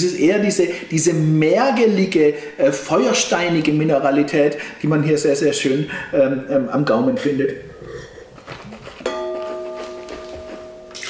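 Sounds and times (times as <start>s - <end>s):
wine glass ringing: 9.1s - 11.0s.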